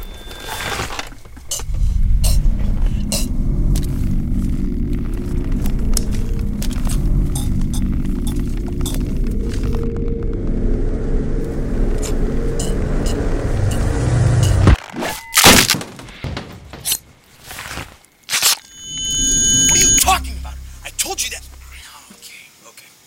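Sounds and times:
steady low rumble: 0.9 - 14.8, 18.8 - 22.0
loud sudden hits: 19.0 - 21.9.

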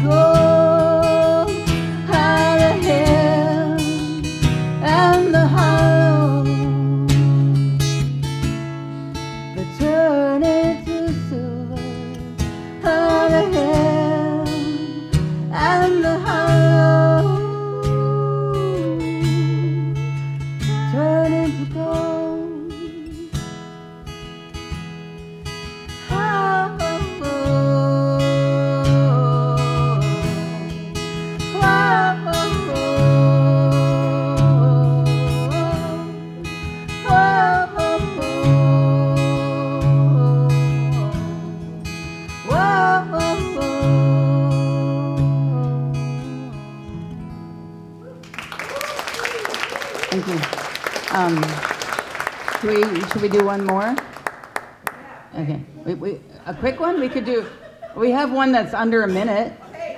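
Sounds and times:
woman singing with vibrato: 0.0 - 7.7, 9.6 - 23.5, 26.1 - 46.9
acoustic guitar strumming: 0.0 - 48.6
second woman singing along: 31.5 - 36.2, 37.0 - 41.5, 42.4 - 46.6.

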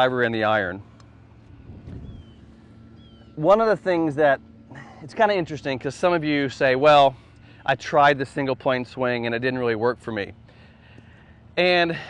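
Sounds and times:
wind rumbling on microphone: 1.4 - 3.4.

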